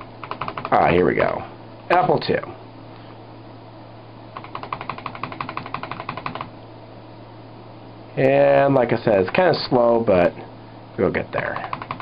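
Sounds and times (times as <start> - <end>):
computer keyboard keys clicking: 0.0 - 0.8, 4.4 - 6.5, 11.5 - 12.0
low steady hum: 0.0 - 12.0.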